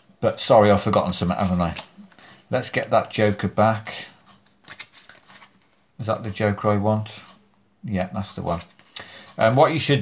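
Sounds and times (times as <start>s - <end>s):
playing cards sliding: 4.6s - 5.7s.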